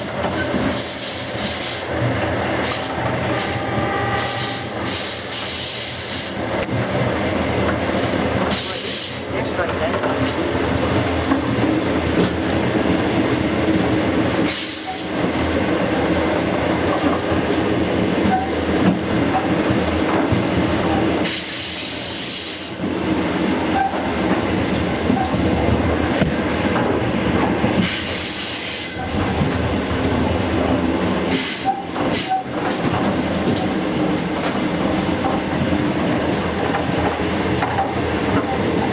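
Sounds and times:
train wheels rumbling on rails: 0.0s - 38.9s.

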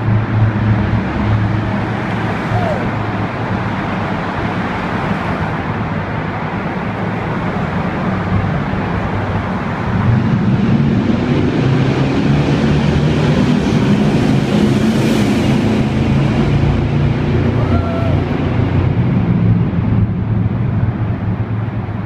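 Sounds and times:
traffic rumble in tunnel: 0.0s - 22.0s
vehicle passing close by: 8.1s - 19.9s.

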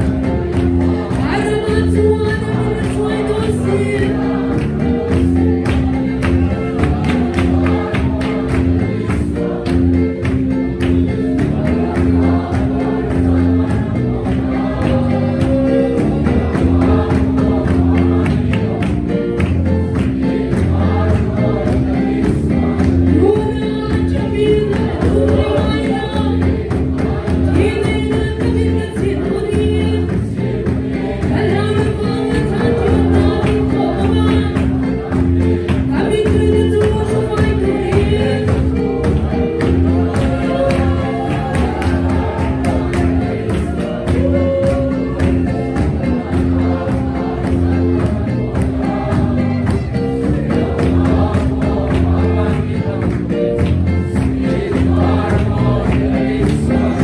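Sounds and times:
congregation singing a hymn: 0.0s - 57.0s
steady percussion beat: 0.0s - 57.0s.

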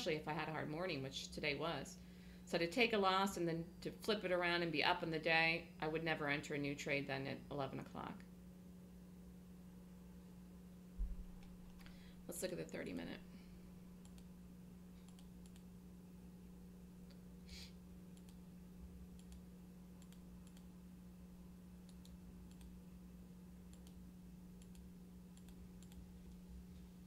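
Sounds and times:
low electrical hum: 0.0s - 27.0s
computer mouse clicks: 14.0s - 14.3s, 15.0s - 15.7s, 18.1s - 18.4s, 19.2s - 19.4s, 20.0s - 20.7s, 21.9s - 22.7s, 23.7s - 24.0s, 24.6s - 26.4s.

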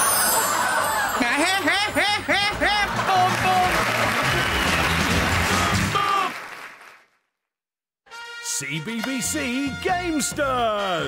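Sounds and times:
audience applause: 0.2s - 7.1s.

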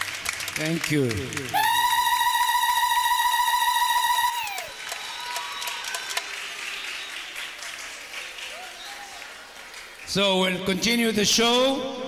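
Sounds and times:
applause: 0.0s - 10.9s
woman ululating: 1.6s - 4.8s.

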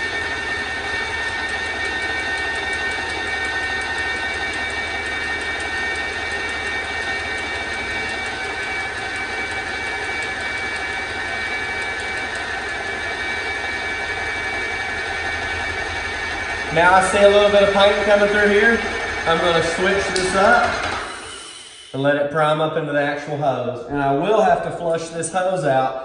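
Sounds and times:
paint sprayer motor whining: 0.0s - 22.1s.

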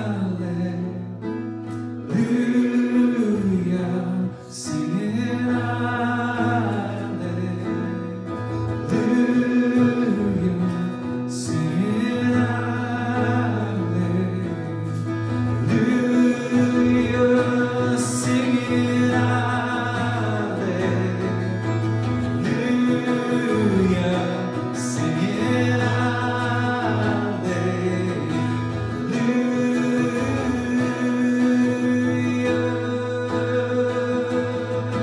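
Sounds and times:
man singing worship song: 0.0s - 1.2s, 2.0s - 35.0s
strummed acoustic guitar: 0.0s - 35.0s.

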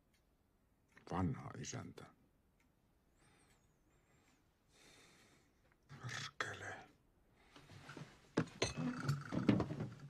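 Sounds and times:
soft breath: 3.1s - 5.6s.

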